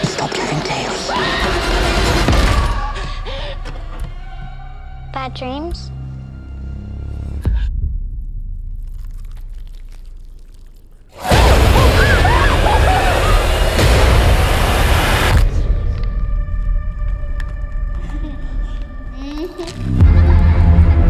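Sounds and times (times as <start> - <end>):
harsh noise blast with glides: 11.1 - 16.0.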